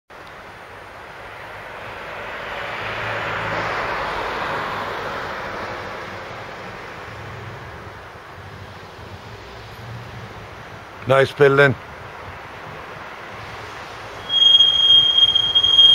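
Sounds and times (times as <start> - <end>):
vehicle passing: 0.6 - 15.9.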